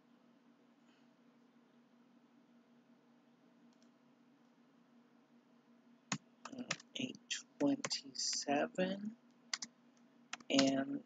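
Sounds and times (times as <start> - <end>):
faint low hum: 0.0 - 11.0
keyboard keystrokes: 10.4 - 10.9.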